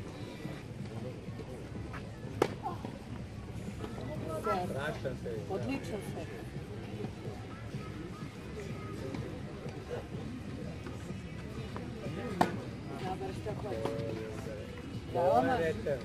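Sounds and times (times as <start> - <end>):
music: 0.0 - 16.0
tennis ball struck by racket: 2.3 - 2.6.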